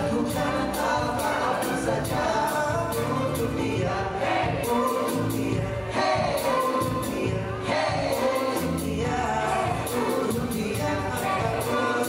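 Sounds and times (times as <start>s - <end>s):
backing music with steady beat: 0.0s - 12.0s
voices singing together: 0.0s - 12.0s.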